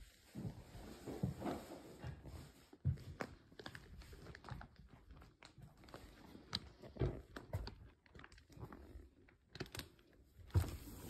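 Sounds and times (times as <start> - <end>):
footsteps on tile floor: 0.0 - 7.9.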